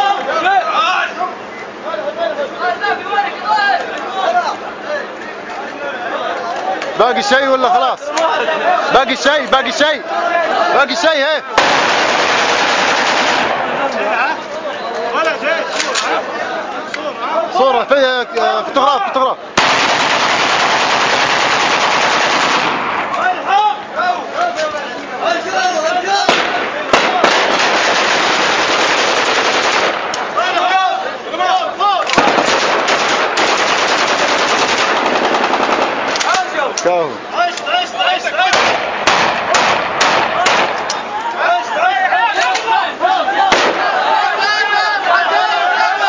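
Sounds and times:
automatic gunfire: 0:11.6 - 0:13.8, 0:19.6 - 0:23.1, 0:26.3 - 0:30.2, 0:32.1 - 0:36.4, 0:38.5 - 0:40.8, 0:43.5 - 0:44.0
automatic rifle burst: 0:32.0 - 0:36.5.

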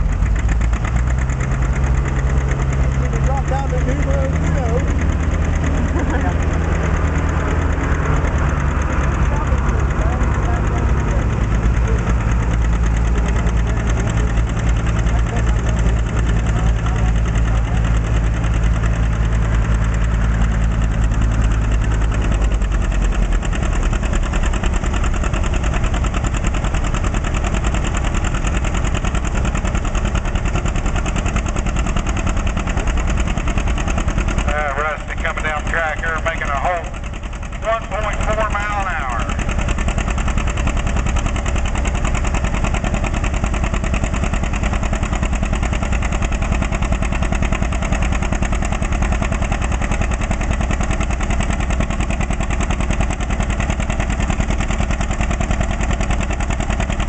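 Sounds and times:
diesel tractor engine under load: 0:00.0 - 0:57.0.

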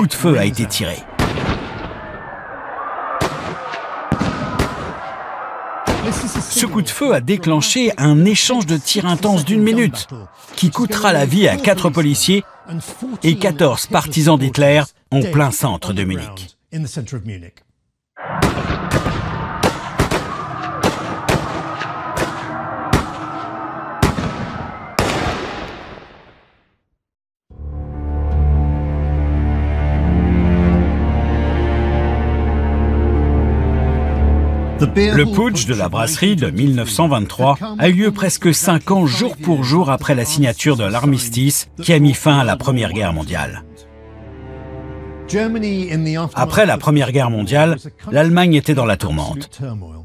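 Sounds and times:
pistol gunshots echoing: 0:03.2 - 0:05.1, 0:18.4 - 0:23.4
droning music: 0:27.5 - 0:35.8, 0:40.7 - 0:48.4.

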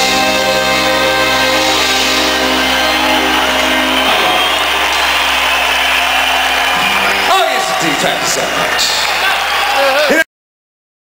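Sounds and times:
live band holding final chord: 0:00.0 - 0:09.5
audience cheering and applause: 0:00.4 - 0:10.3.

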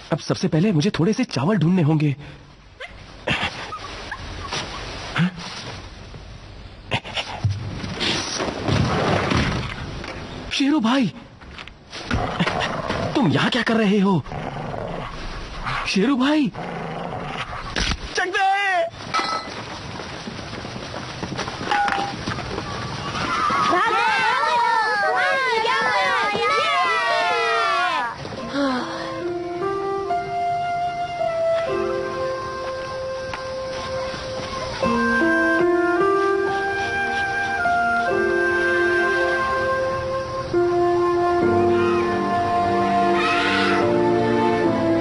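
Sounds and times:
children shouting and screaming: 0:22.6 - 0:28.3, 0:41.3 - 0:44.2.

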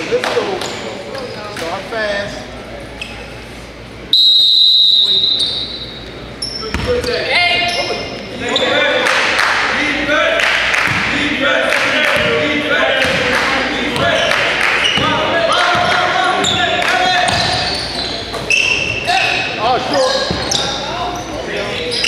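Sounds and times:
referee's whistle blast: 0:04.1 - 0:06.0
players and spectators calling out: 0:04.4 - 0:22.0.

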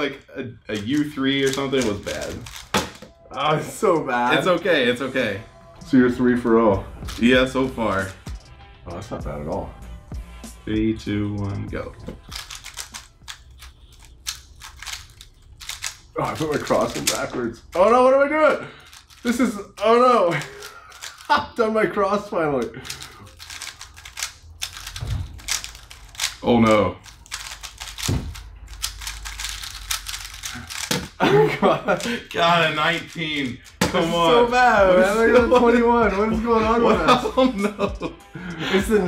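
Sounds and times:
plastic puzzle cube clicking: 0:00.7 - 0:03.0, 0:12.3 - 0:17.3, 0:22.8 - 0:26.4, 0:27.0 - 0:31.2.

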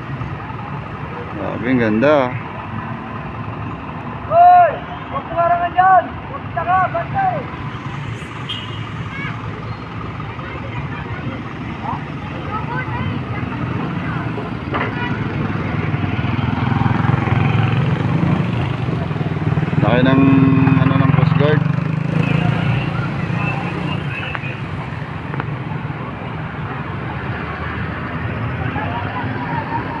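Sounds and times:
vehicle engines running: 0:00.0 - 0:30.0
loud high rising and falling calls: 0:04.2 - 0:10.4.

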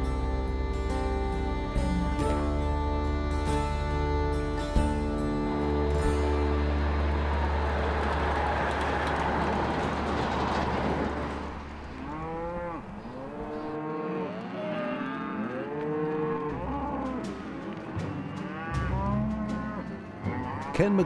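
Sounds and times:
truck passing: 0:00.0 - 0:15.6
cattle mooing: 0:12.0 - 0:20.8.

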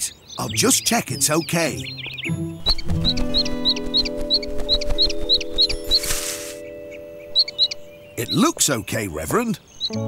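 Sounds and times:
baby birds cheeping: 0:00.0 - 0:10.0
background music: 0:00.6 - 0:08.7, 0:09.8 - 0:10.0.

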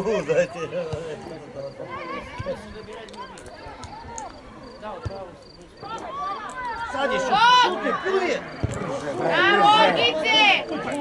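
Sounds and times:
crowd murmur: 0:00.0 - 0:11.0
distant people shouting: 0:03.2 - 0:11.0.

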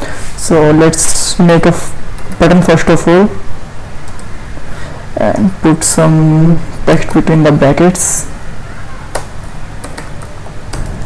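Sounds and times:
low steady hum: 0:00.0 - 0:11.0
keyboard keys clicking: 0:09.1 - 0:11.0.

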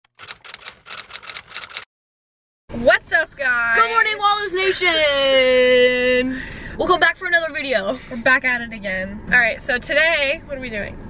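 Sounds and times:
typewriter key clicks: 0:00.1 - 0:01.8.

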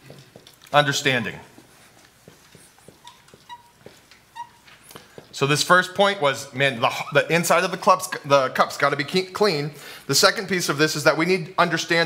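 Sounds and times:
marker squeaking on whiteboard: 0:01.6 - 0:05.3
marker tapping: 0:02.0 - 0:05.3.

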